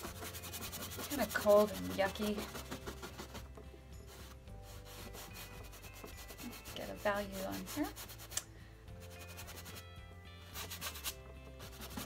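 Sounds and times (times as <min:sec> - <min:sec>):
paintbrush scrubbing on canvas: 0:00.0 - 0:03.5, 0:04.1 - 0:08.4, 0:10.6 - 0:12.0.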